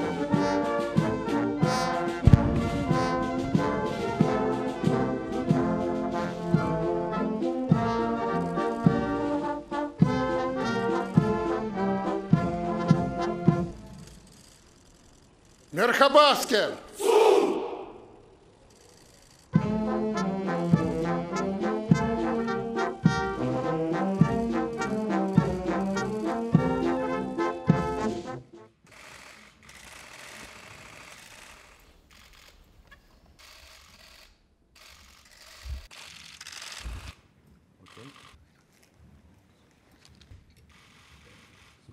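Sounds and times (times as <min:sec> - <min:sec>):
low thumps: 0:02.2 - 0:05.0
soldiers shouting in unison: 0:16.9 - 0:18.3
camera shutters clicking: 0:33.4 - 0:37.2.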